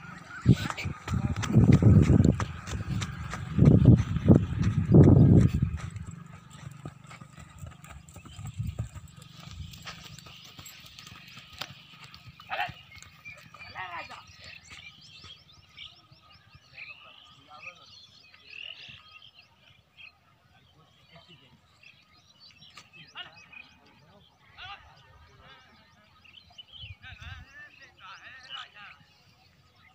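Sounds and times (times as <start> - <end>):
horse hoofbeats on dirt: 0.0 - 16.7
distant shouts and calls: 0.0 - 21.7, 22.8 - 29.9.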